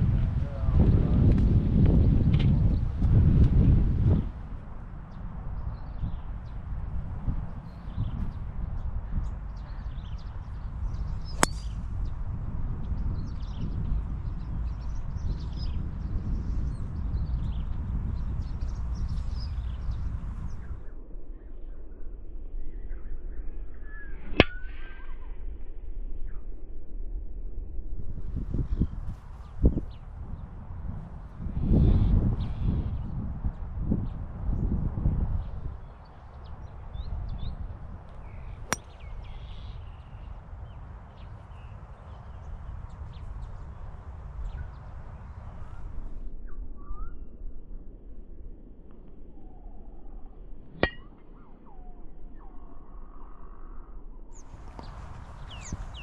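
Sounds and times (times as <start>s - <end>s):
small birds chirping: 7.6s - 20.8s, 54.4s - 56.0s.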